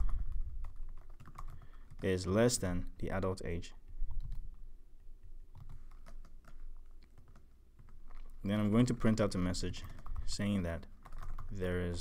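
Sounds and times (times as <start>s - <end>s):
keyboard typing: 0.0s - 2.2s, 4.1s - 4.6s, 5.2s - 11.7s.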